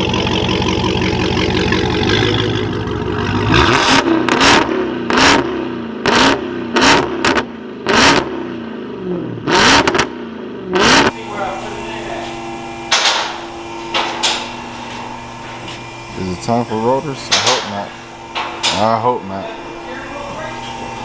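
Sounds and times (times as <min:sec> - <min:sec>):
car engine idling and revving: 0:00.0 - 0:21.0.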